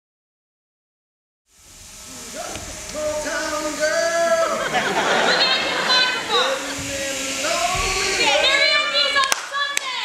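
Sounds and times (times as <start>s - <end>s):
raised voices calling out: 2.3s - 10.0s
sharp hand claps: 9.2s - 10.0s.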